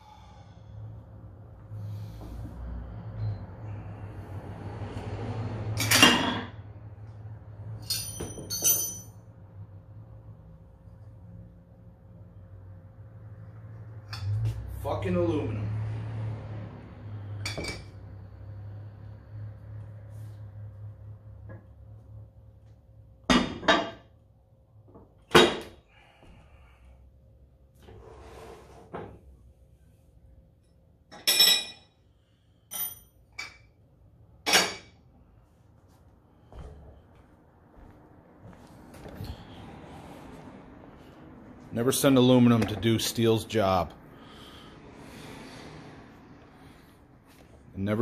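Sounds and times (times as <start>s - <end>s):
ringing metallic clinks: 7.8s - 9.2s.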